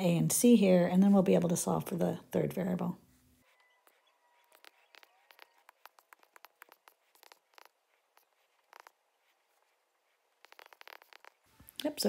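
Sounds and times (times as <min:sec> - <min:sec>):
stylus tapping and scratching on tablet: 0:03.4 - 0:12.0.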